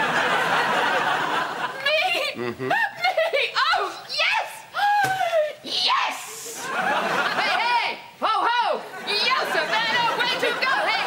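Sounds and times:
woman shrieking and whooping: 3.6s - 6.5s.

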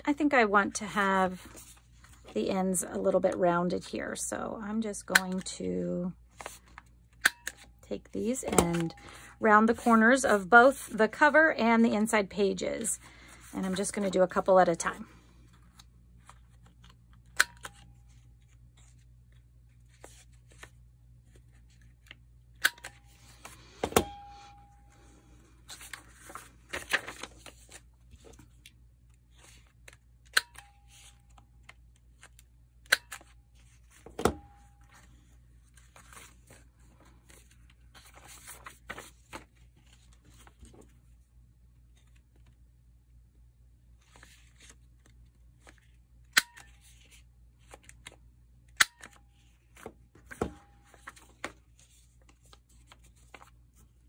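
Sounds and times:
paper sheets rustling: 8.5s - 11.3s, 25.6s - 28.6s, 33.6s - 41.0s, 49.4s - 54.0s.

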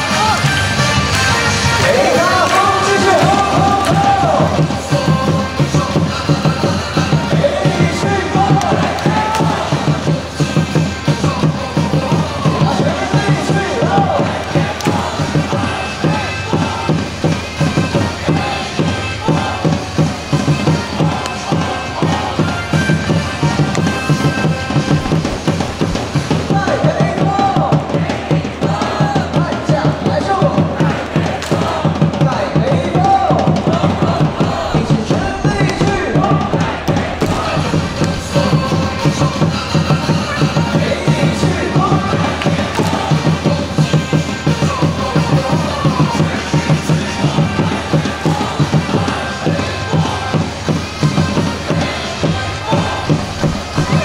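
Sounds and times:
cheer song over stadium speakers: 0.0s - 54.0s
crowd chanting: 0.0s - 54.0s
steady drum beat: 0.0s - 54.0s.

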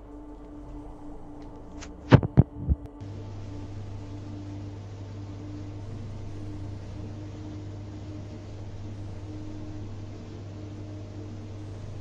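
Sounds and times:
steady low hum: 0.0s - 12.0s
dull thumps: 1.8s - 3.0s.

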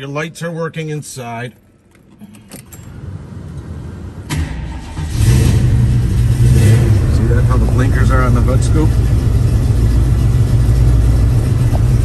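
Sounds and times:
engine starter cranking: 4.3s - 5.6s.

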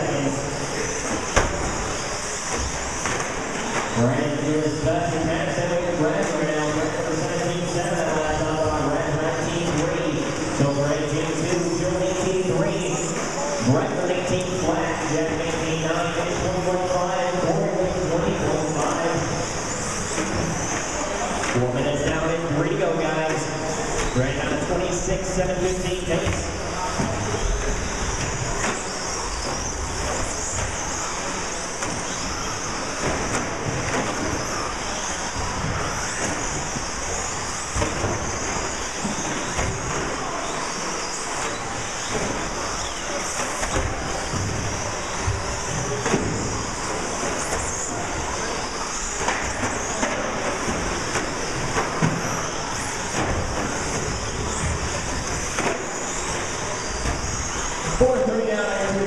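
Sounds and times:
rc truck motor whine: 0.0s - 59.0s.

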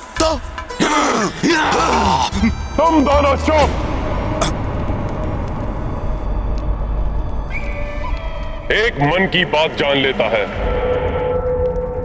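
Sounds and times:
low rumbling drone: 2.4s - 12.0s.

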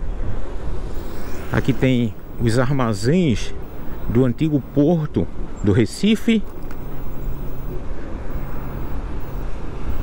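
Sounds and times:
wind rushing over microphone: 0.0s - 5.6s
electric scooter road noise: 0.0s - 10.0s
faint low hum: 0.5s - 10.0s.

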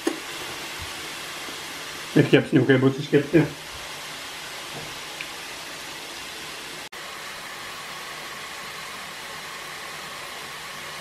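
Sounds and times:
pork chops sizzling on a grill: 0.0s - 11.0s.

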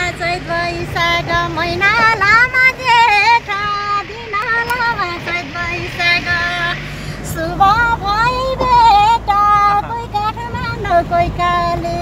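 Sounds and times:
vehicle engine hum and road noise: 0.0s - 12.0s.

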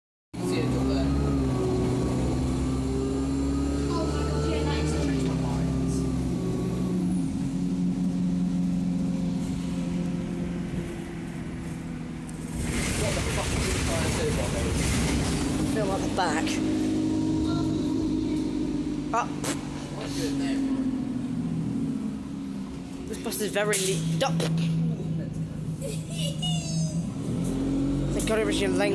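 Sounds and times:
bus diesel engine droning: 0.4s - 28.9s.

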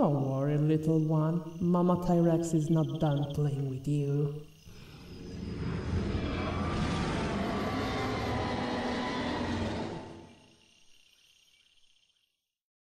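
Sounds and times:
deep rumbling ambience: 4.5s - 10.7s.

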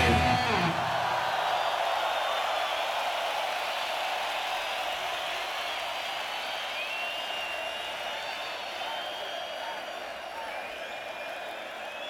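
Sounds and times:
heavy metal band: 0.0s - 1.3s
crowd cheering and shouting: 0.0s - 5.6s.

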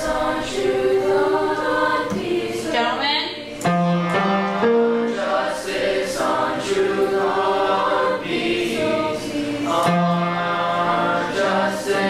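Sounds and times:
chorus singing in parts: 0.0s - 12.0s.

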